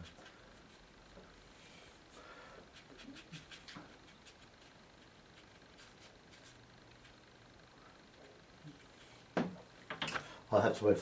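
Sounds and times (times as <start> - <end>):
brush dabbing on paper: 0.0 - 1.5, 2.6 - 7.3.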